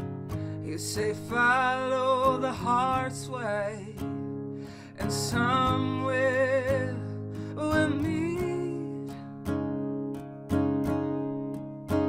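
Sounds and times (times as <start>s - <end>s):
acoustic guitar strumming: 0.0s - 12.0s
woman singing: 0.7s - 4.0s, 5.0s - 9.2s.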